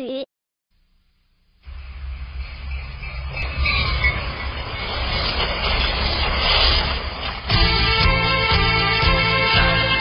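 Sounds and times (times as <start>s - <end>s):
passing train rumbling: 1.6s - 10.0s.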